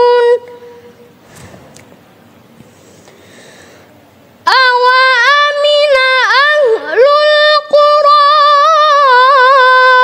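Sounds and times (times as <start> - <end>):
person reciting in high voice: 0.0 - 0.9, 4.4 - 10.0.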